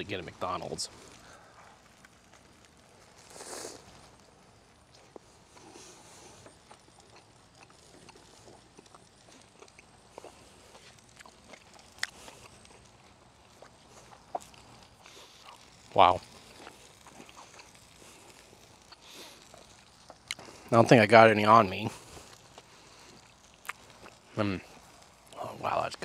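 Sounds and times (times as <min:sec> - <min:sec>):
man chewing a burger: 0:00.9 - 0:21.0, 0:21.8 - 0:26.0.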